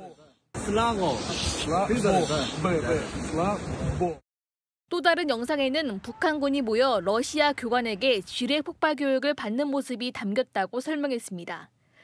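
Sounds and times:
men talking on phone: 0.0 - 4.2
steady hiss: 0.6 - 3.7.

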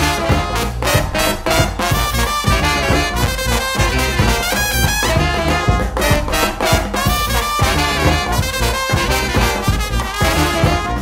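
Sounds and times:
steady drum beat: 0.0 - 11.0
trumpet and trombone lines: 0.0 - 11.0.

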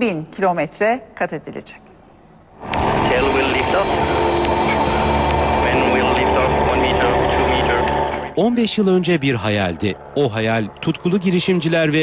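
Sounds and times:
propellers humming: 2.6 - 8.4.

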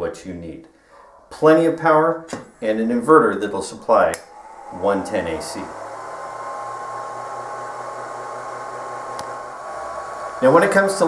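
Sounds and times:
fan-like hiss: 0.9 - 11.0
faint high whine: 2.9 - 11.0.

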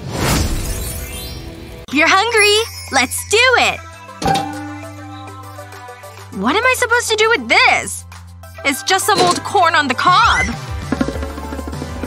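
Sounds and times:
background music: 0.7 - 12.0
ringing crash sound effect: 4.2 - 5.5.

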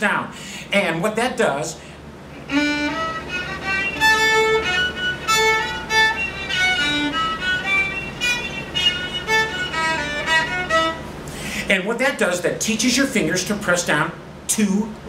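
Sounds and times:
fiddle squawk notes: 2.4 - 11.1.

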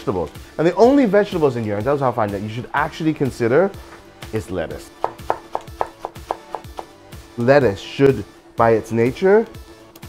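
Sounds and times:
quiet background music: 0.0 - 10.0
knife chopping on wooden board: 5.0 - 7.0.

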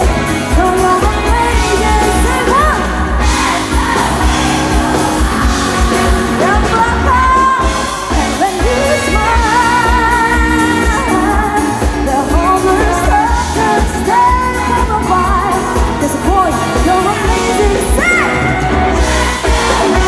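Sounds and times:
bass and drum beat: 0.0 - 20.0
woman singing pop song: 0.0 - 20.0.

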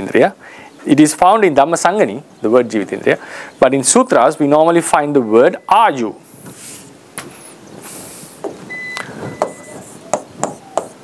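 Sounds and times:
high beep: 5.1 - 6.1, 8.7 - 9.8.

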